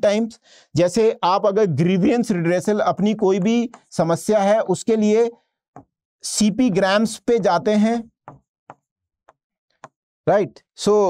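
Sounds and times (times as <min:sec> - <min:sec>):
pen tapping on surface: 0:03.3 - 0:03.9, 0:05.8 - 0:06.0, 0:08.2 - 0:10.0.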